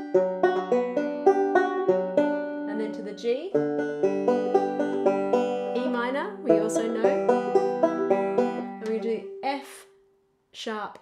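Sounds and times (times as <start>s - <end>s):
banjo fingerpicking: 0.0s - 9.5s.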